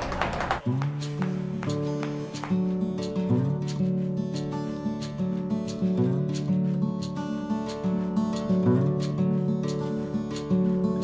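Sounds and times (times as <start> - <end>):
plucked acoustic guitar music: 0.6 - 11.0.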